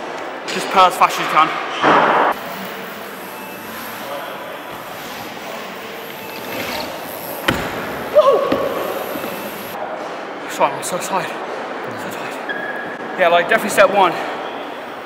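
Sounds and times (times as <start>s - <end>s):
bike tyres rolling: 2.4s - 9.8s
bike landing thud: 6.6s - 9.7s.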